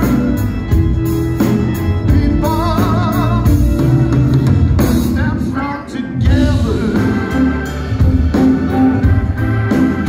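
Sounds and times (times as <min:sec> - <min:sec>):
live blues band playing: 0:00.0 - 0:10.0.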